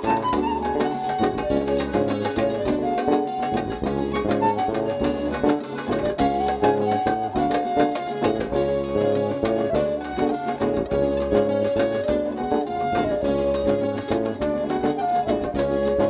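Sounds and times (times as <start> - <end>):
electric bass: 0.0 - 7.6, 8.2 - 16.0
acoustic guitars: 0.0 - 16.0
frame drum beat: 0.0 - 16.0
held lead melody: 0.0 - 16.0.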